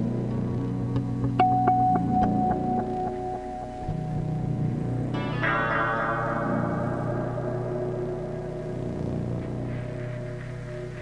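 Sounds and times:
low steady electronic drone: 0.0 - 11.0.

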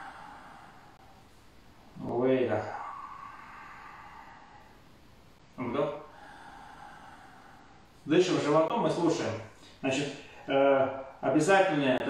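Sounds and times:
person breathing in slowly: 0.0 - 1.6, 2.5 - 5.3, 6.0 - 8.1.

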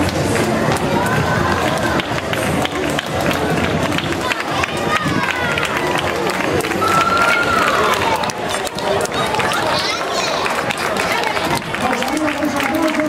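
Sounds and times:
running footsteps on asphalt: 0.0 - 13.0.

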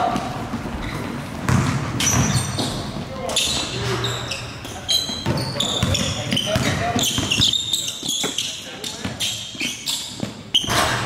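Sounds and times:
basketballs bouncing on wood floor: 0.0 - 4.0, 4.7 - 11.0
sneaker squeaks: 0.0 - 11.0.

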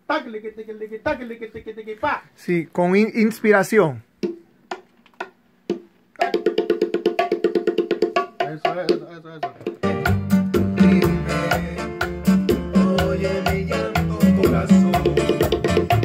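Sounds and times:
bass and percussion: 4.2 - 16.0.

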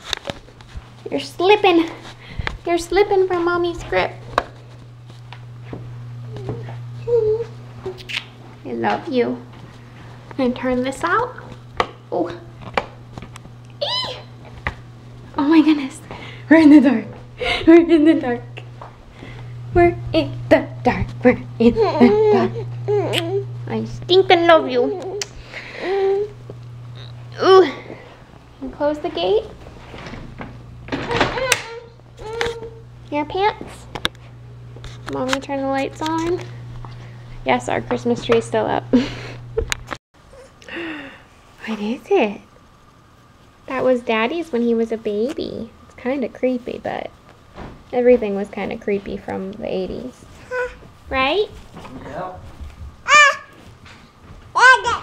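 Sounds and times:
steady low hum: 0.0 - 55.0
toddler voice sounds: 6.3 - 7.6, 50.4 - 51.5, 53.1 - 53.6, 54.6 - 55.0.

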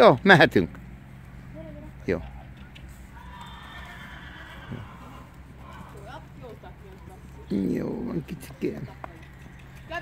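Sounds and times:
horse whinnying: 3.1 - 6.4.

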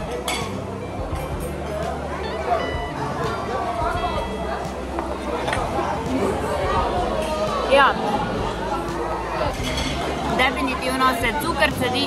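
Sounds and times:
background chatter: 0.0 - 12.0
background music: 0.0 - 12.0
tableware clinking: 0.1 - 0.6, 9.5 - 10.2.

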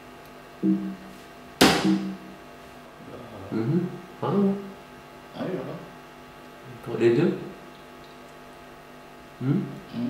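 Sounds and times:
man humming mmh: 3.0 - 4.0, 9.4 - 10.0.

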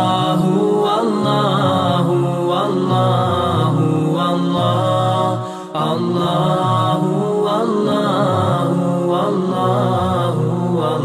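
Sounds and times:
man chanting with echo: 0.0 - 11.0.

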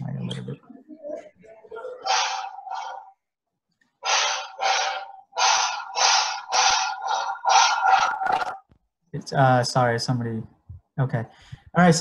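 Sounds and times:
rhythmic hissing bursts: 4.0 - 8.3.

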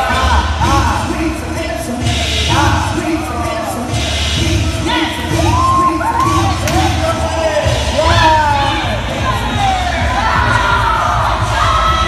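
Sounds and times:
dance beat with bass pulse: 0.1 - 12.0
voices whooping and cheering: 5.1 - 7.2, 7.9 - 12.0.

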